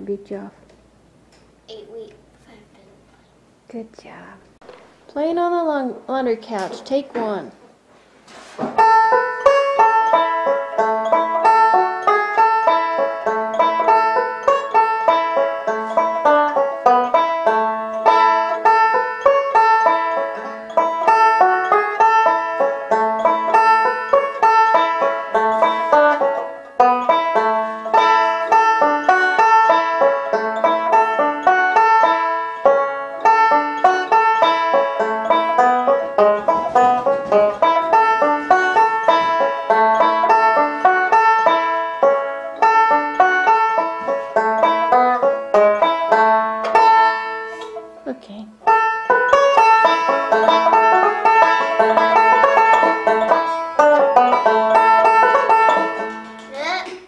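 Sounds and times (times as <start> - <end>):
banjo picked notes: 8.8 - 57.0.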